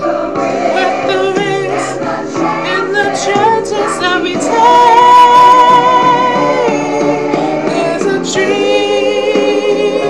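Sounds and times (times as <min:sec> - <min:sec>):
backing track music: 0:00.0 - 0:10.0
gospel choir singing: 0:00.0 - 0:10.0.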